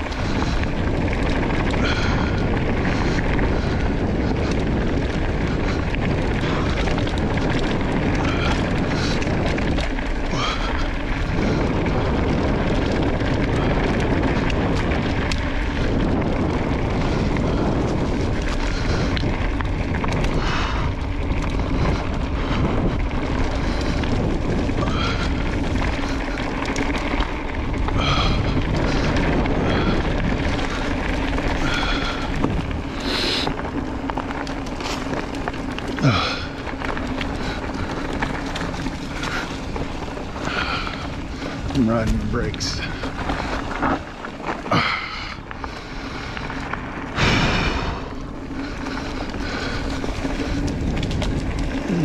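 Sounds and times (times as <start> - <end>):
bike tyres rolling on dirt: 0.0 - 52.0
wind on microphone: 0.0 - 52.0.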